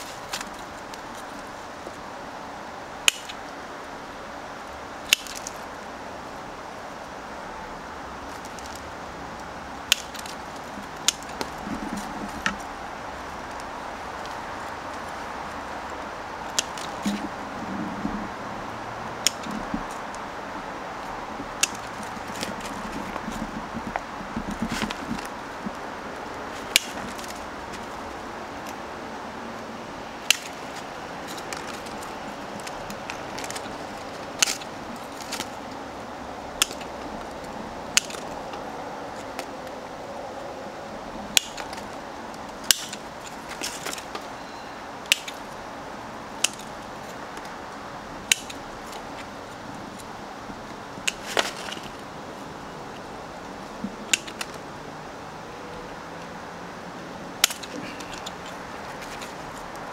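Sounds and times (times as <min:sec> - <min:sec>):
steady background hiss: 0:00.0 - 0:59.9
pruning scissors snipping twigs: 0:03.0 - 0:03.4, 0:05.0 - 0:05.6, 0:09.4 - 0:17.4, 0:19.2 - 0:20.2, 0:21.5 - 0:25.8, 0:26.5 - 0:28.8, 0:29.6 - 0:35.9, 0:36.6 - 0:39.8, 0:41.3 - 0:45.6, 0:46.4 - 0:47.6, 0:48.2 - 0:50.1, 0:50.7 - 0:52.0, 0:53.8 - 0:54.6, 0:57.4 - 0:59.9.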